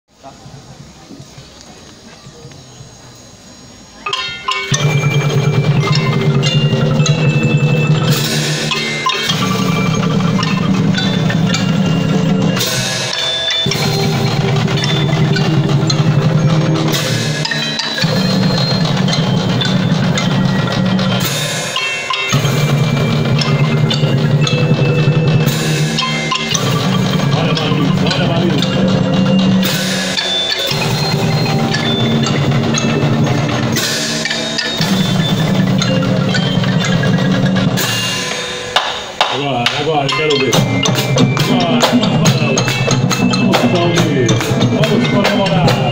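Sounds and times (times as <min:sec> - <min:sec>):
marimbas and vibraphone melody: 0:03.6 - 0:45.9
snare drums and cymbals: 0:04.1 - 0:45.9.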